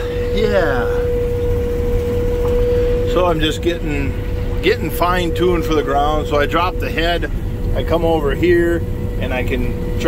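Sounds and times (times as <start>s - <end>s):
high-pitched whine: 0.0s - 10.0s
low machinery rumble: 0.0s - 10.0s.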